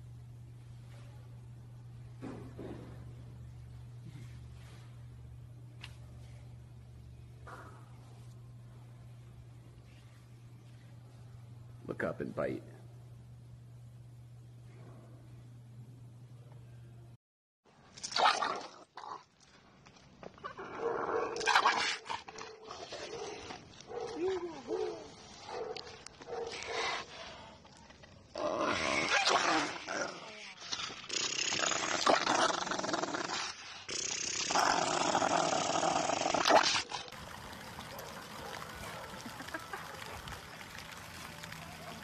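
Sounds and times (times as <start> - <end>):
dog growling and snarling: 28.3 - 37.2.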